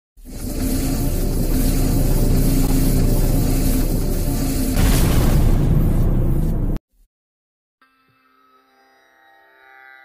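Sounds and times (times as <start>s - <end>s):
low steady drone with hiss: 0.2s - 4.8s.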